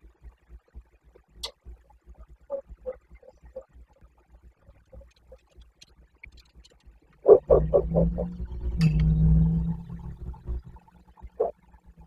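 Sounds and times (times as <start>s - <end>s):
faint ticks: 0.0s - 7.4s.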